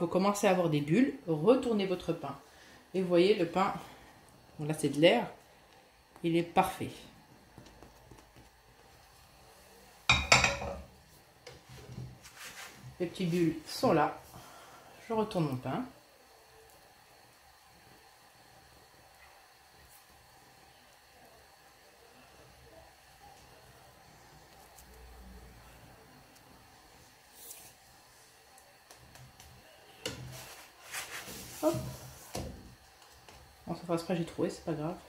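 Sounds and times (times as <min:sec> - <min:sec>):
faint steady hiss: 0:00.0 - 0:35.0.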